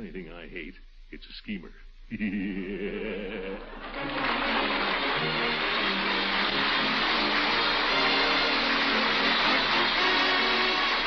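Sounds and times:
studio audience applauding: 3.6 - 11.0
orchestra musical bridge: 3.9 - 11.0.

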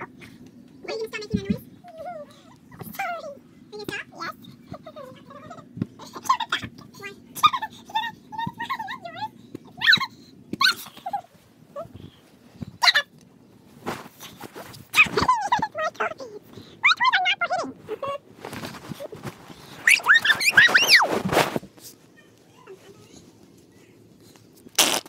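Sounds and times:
low steady hum: 0.0 - 24.8
dog whining: 19.8 - 21.2.

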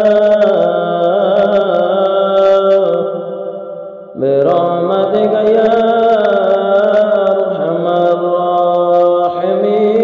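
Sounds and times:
person chanting in held notes: 4.2 - 10.0.

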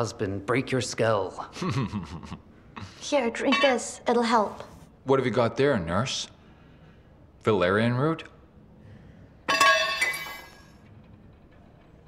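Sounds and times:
glass clinking: 3.4 - 4.1, 9.5 - 10.8.

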